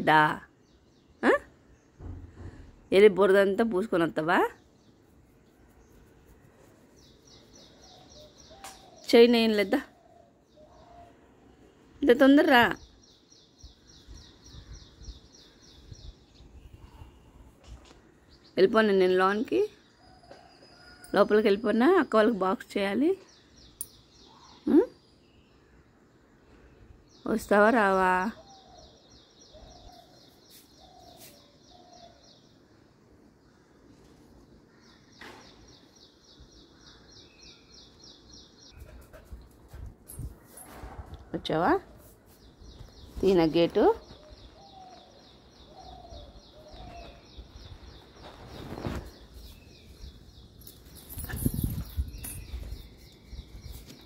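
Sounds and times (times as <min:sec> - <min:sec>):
bird chirping: 0:04.6 - 0:17.3, 0:41.4 - 0:54.0.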